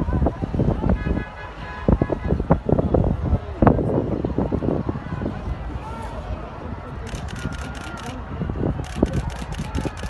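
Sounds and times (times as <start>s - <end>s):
traffic noise: 0.0s - 10.0s.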